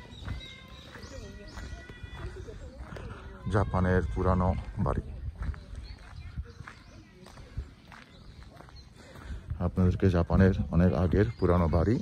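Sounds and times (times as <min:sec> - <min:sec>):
footsteps on gravel: 0:00.0 - 0:11.6.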